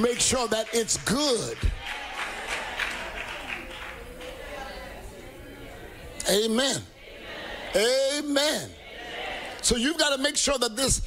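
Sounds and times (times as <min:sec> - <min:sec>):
congregation clapping: 0:00.0 - 0:04.8.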